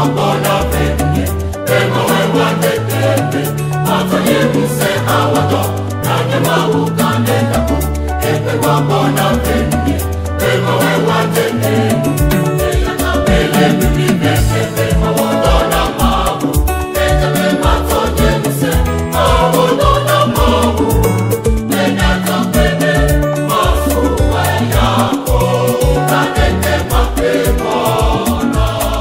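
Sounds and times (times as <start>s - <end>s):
choir singing: 0.0s - 29.0s
band with drum and bass beat: 12.2s - 28.9s.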